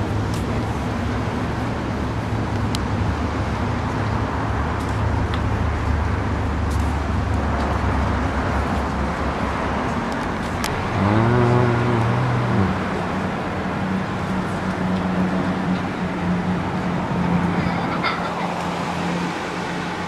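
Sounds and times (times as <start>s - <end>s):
street traffic: 0.0s - 20.0s.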